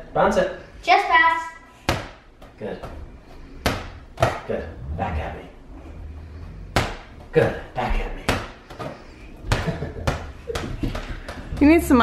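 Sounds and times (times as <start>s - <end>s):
ball bouncing on wooden floor: 3.6s - 4.5s, 6.7s - 7.3s, 8.1s - 12.0s.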